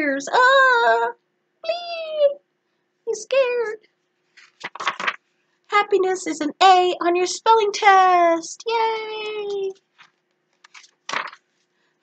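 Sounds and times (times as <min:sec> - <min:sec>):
woman squeaky character voice: 0:00.0 - 0:02.4.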